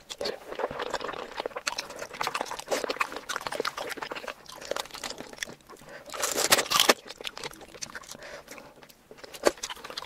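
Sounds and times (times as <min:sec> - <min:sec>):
wet chewing mouth sounds: 0:00.0 - 0:10.0.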